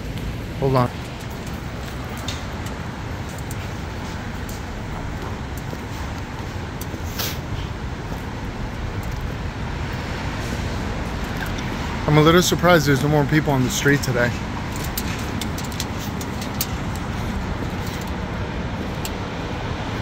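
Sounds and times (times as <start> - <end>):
cars passing on street: 0.0 - 20.0.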